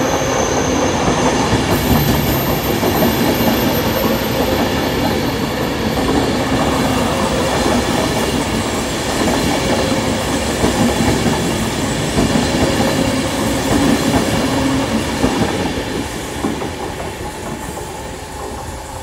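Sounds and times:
electric train passing: 0.0s - 19.0s.

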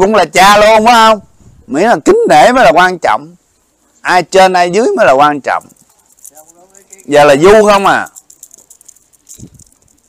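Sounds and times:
faint clicks and rattling: 5.4s - 10.0s.

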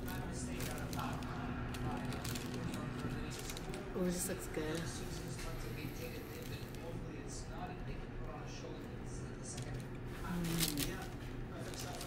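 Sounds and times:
faint background voices: 0.0s - 12.0s
low steady hum: 0.0s - 12.0s.

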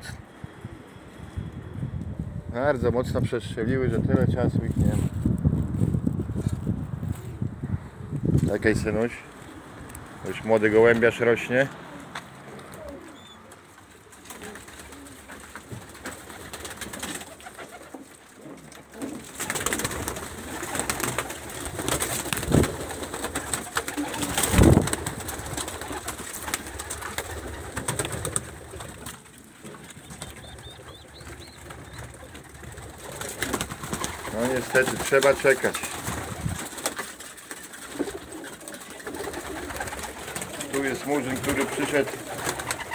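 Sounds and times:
pigeons cooing: 11.7s - 42.9s.

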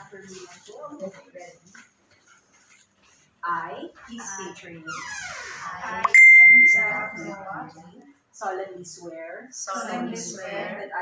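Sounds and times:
bell-like ding: 6.1s - 7.3s.

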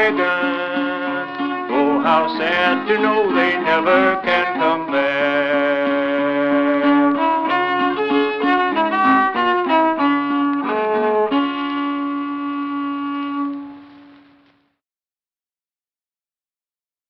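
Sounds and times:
fiddle playing: 0.0s - 14.3s.

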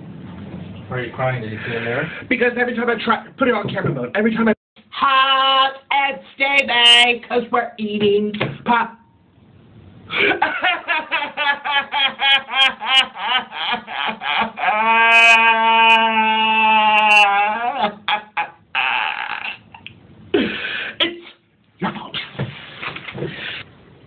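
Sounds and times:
person laughing hard: 10.1s - 20.6s
long vocal wail: 14.2s - 19.8s.

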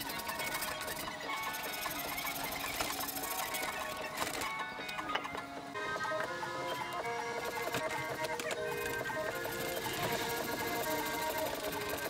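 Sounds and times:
handsaw cutting wood: 0.0s - 12.0s.

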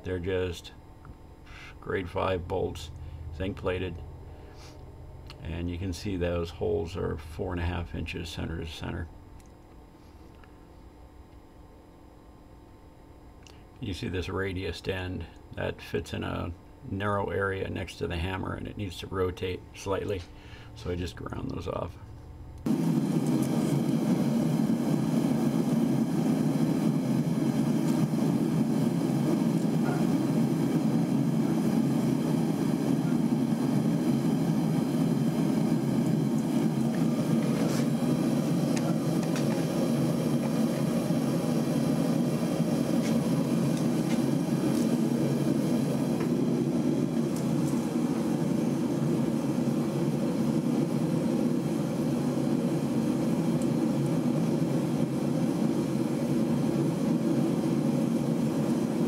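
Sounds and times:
blower whooshing: 22.6s - 59.0s.

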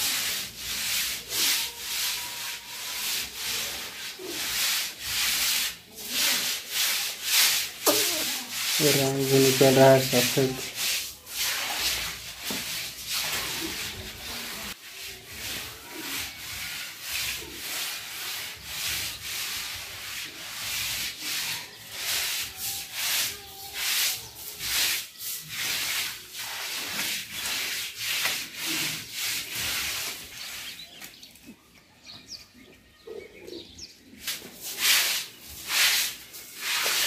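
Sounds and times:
grass broom swishing on wet floor: 0.0s - 31.3s, 34.0s - 37.0s.

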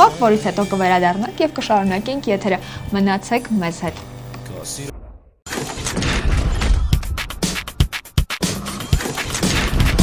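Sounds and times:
loud noisy hit: 4.9s - 7.8s, 9.2s - 10.0s.

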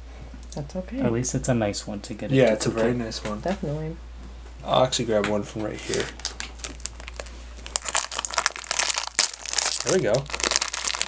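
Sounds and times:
foil bag crinkling: 5.9s - 11.0s.

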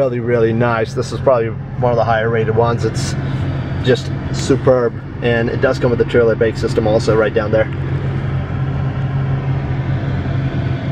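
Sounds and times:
truck engine idling: 0.0s - 10.9s.

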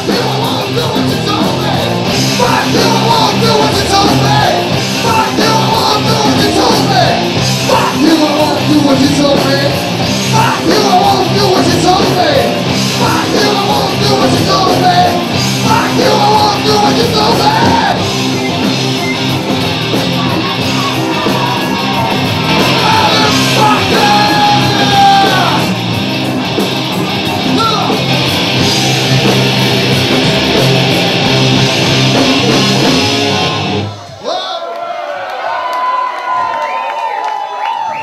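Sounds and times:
live rock band playing: 0.0s - 34.2s
audience shouting and cheering: 0.0s - 38.0s.

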